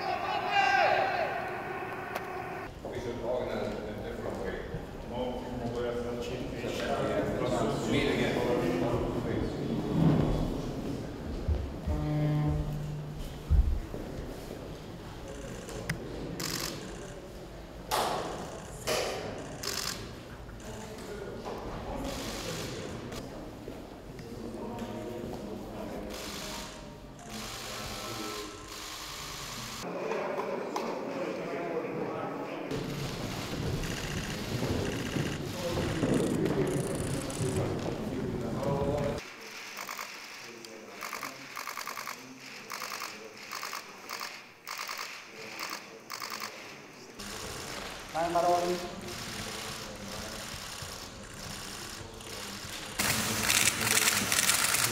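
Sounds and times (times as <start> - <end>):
indistinct voices: 0.0 - 2.7
low room murmur: 1.2 - 54.9
camera shutters clattering: 33.0 - 37.6, 49.2 - 54.9.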